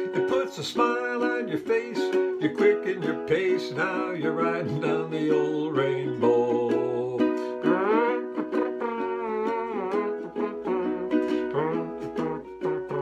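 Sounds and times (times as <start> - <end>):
ukulele strumming: 0.0 - 13.0.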